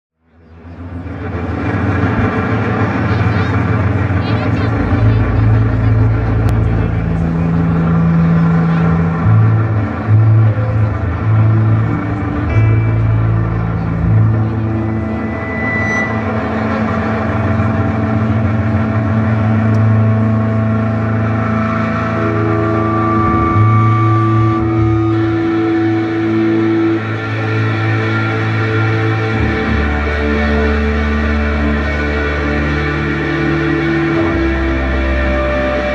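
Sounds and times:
bass guitar droning: 0.2 - 35.9
electric guitars droning: 0.2 - 35.9.

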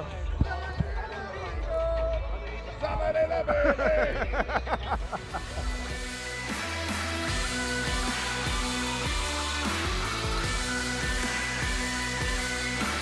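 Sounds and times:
background music: 0.0 - 13.0
men laughing and calling out: 2.7 - 6.0.

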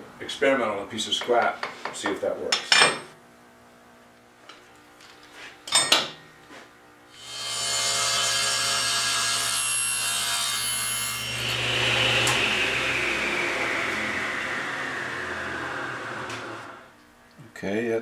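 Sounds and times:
table saw cutting wood: 7.2 - 17.0
saw blade whine spinning down: 11.0 - 17.0.

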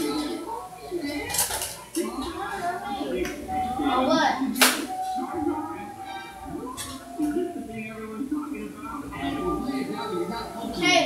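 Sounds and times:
people talking: 0.0 - 11.0
dishes and cutlery clinking: 1.0 - 2.4, 6.0 - 7.5.

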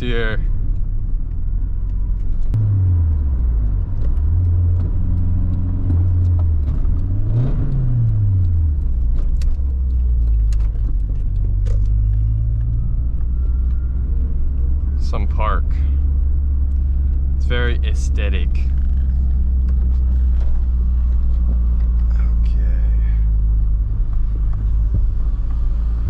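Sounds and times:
car engine heard from inside cabin: 0.0 - 26.0.

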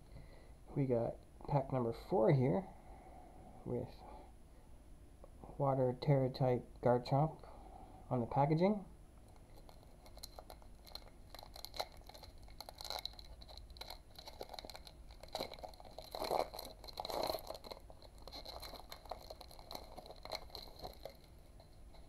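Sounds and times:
foil wrapper crinkling and tearing: 9.3 - 22.0.

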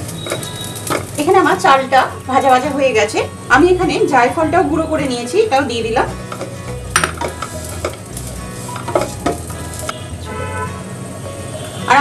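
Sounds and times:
rice sizzling in a pot: 0.0 - 12.0
spatula scraping a pot: 6.3 - 10.0.

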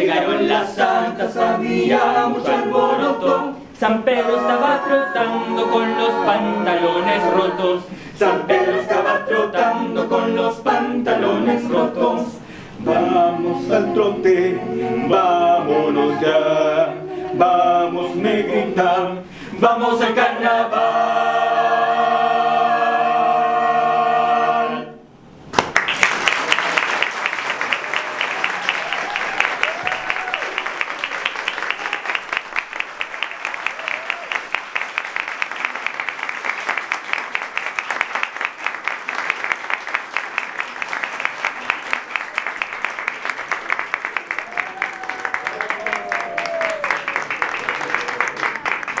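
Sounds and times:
audience applauding: 25.5 - 49.0.

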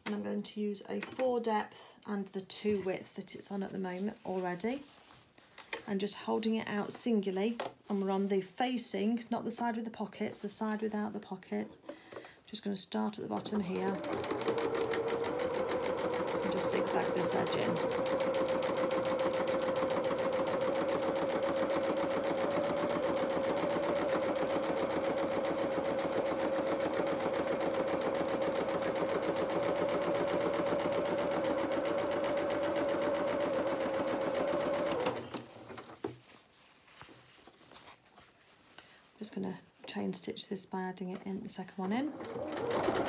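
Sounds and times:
sewing machine running: 13.4 - 35.8, 42.1 - 43.0.

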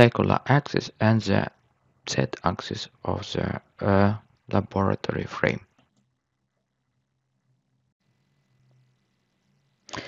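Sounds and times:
faint low hum: 0.0 - 1.5, 2.1 - 10.0.

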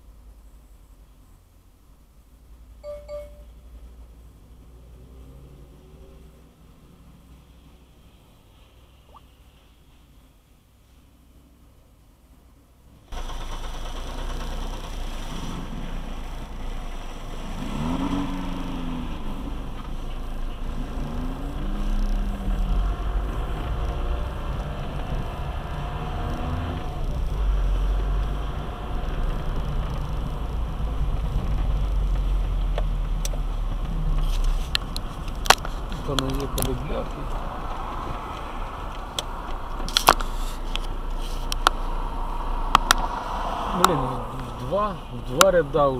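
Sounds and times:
car engine and road rumble: 0.0 - 45.9
brief pitch glides: 2.8 - 3.6.

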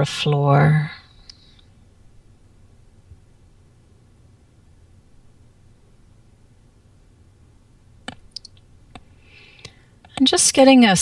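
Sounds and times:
small sharp clicks: 8.0 - 10.2
soft breath-like hiss: 9.1 - 10.0.

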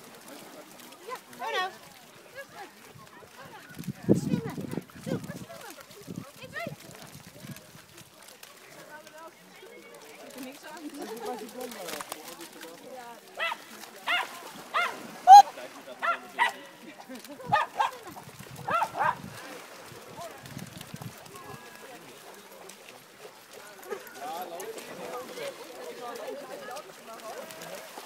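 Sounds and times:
dog barking: 13.4 - 15.0, 16.0 - 16.6, 17.5 - 18.0, 18.7 - 19.2.

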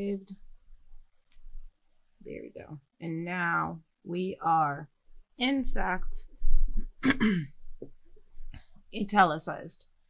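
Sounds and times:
woman clearing her throat: 7.0 - 7.6.

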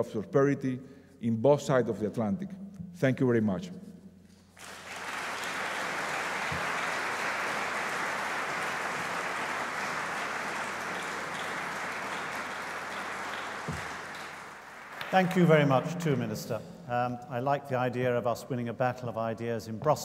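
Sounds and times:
audience applauding: 4.6 - 16.4.

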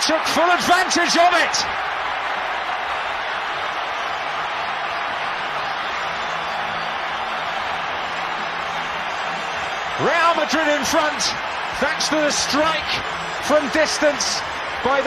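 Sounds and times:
stadium crowd cheering and applauding: 0.0 - 15.0.

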